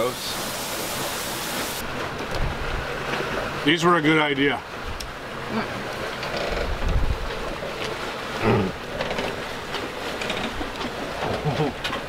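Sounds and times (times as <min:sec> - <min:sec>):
wind and water rushing: 0:00.0 - 0:12.0
person grunting: 0:08.4 - 0:08.8.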